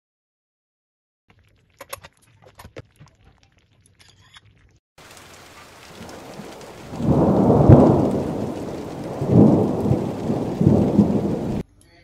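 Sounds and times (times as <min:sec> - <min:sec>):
rain falling: 0:05.0 - 0:11.6
thunder rumbling: 0:05.0 - 0:11.6.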